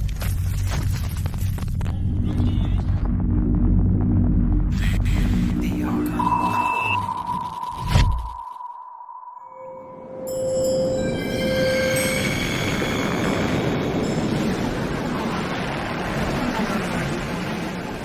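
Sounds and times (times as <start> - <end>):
rushing noise: 2.1 - 10.3, 11.0 - 18.0
held electronic tone: 5.3 - 12.3.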